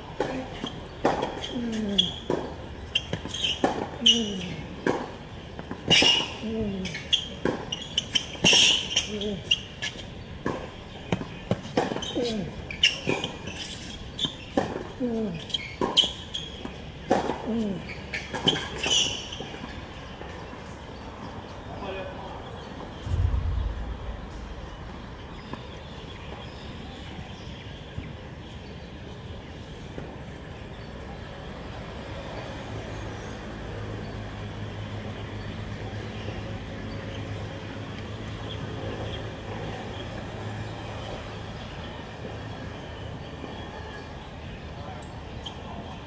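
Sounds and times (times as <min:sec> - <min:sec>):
low thump: 0:23.0 - 0:25.8.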